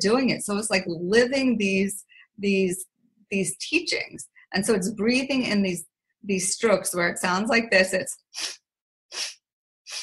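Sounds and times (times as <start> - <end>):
woman sniffing through nose: 8.4 - 10.0.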